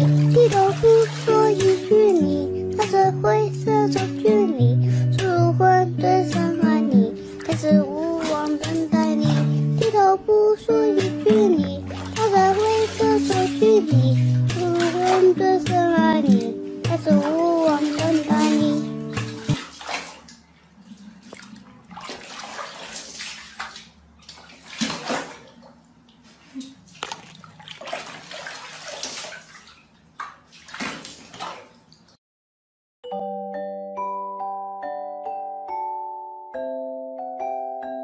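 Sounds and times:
water splashing in a plastic tub: 0.0 - 3.0, 6.3 - 32.2.

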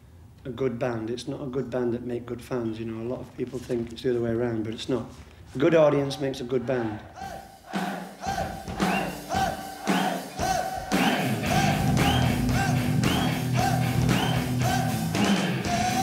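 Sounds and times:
chords and drum hits: 7.5 - 16.0
heavy metal band playing live: 8.6 - 16.0
sustained bass: 11.0 - 16.0.

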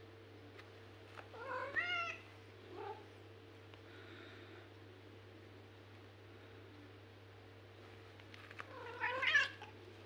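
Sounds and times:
cat meowing: 8.7 - 9.7.

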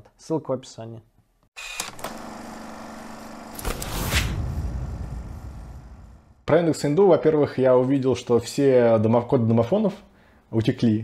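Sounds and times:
loud whoosh: 3.6 - 6.5
deep boom: 3.7 - 6.5.

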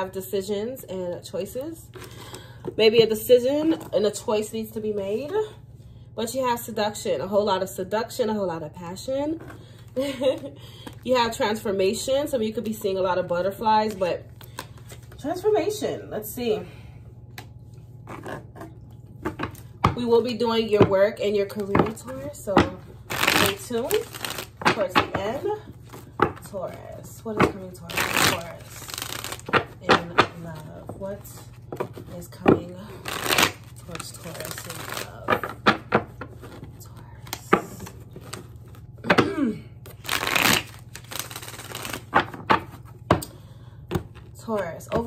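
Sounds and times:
cards being shuffled: 21.6 - 39.2, 39.9 - 43.0.

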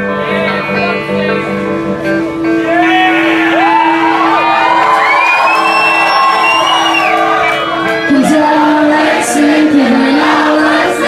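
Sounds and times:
live rock band with electric guitar: 0.0 - 11.0
audience whooping and shouting: 2.6 - 8.2.

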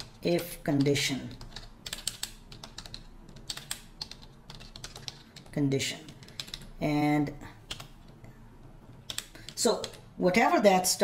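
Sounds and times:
computer keyboard typing: 0.0 - 6.8, 7.6 - 10.1.

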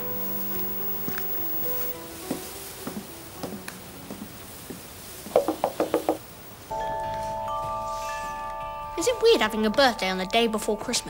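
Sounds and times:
bell-like chimes: 6.7 - 9.5.

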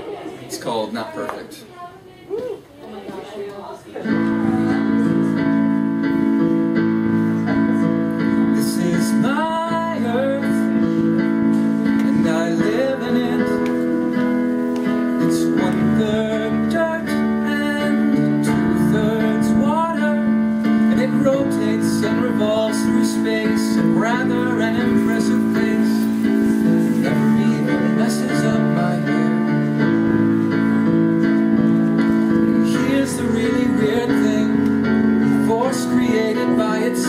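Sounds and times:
digital piano chords and melody: 4.0 - 37.0.

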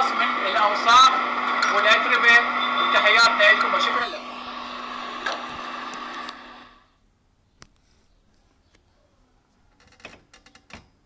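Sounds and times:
water station machinery hum: 0.0 - 6.8.

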